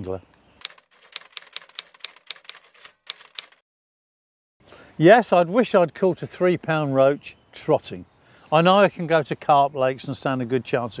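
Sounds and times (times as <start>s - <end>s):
typewriter key clicks: 0.6s - 3.6s.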